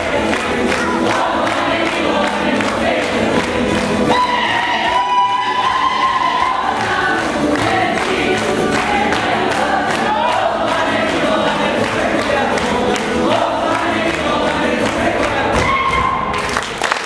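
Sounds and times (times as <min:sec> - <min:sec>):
group of folk singers: 0:00.0 - 0:16.0.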